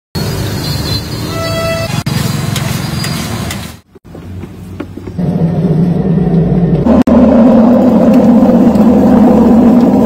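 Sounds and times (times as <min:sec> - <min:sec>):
roadside traffic: 0:00.1 - 0:10.0
car horn toot: 0:01.3 - 0:02.1.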